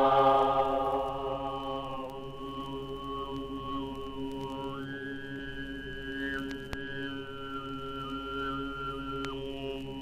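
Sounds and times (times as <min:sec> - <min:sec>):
throat singing drone: 0:00.0 - 0:03.7
whistle-like overtone: 0:00.0 - 0:03.9.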